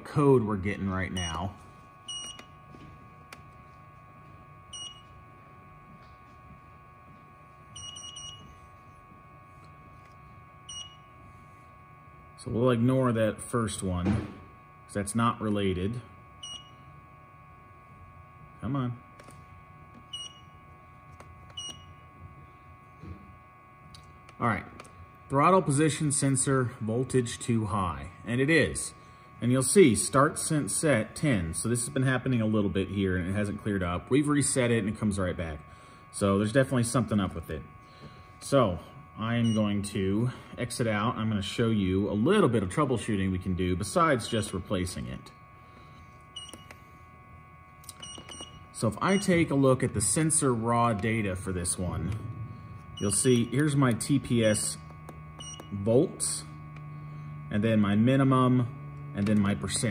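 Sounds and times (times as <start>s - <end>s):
faint steady hum: 0.0s - 59.9s.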